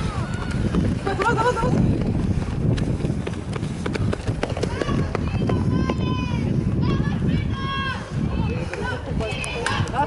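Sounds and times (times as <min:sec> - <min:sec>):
spiked shoes tapping on a track: 0:00.3 - 0:06.0.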